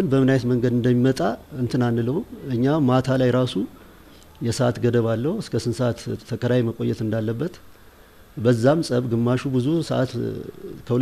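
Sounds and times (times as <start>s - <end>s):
man speaking: 0.0s - 3.8s, 4.4s - 7.6s, 8.4s - 11.0s.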